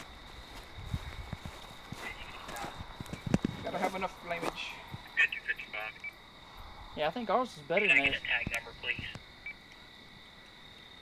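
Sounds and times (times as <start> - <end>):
person speaking: 7.0 - 9.2.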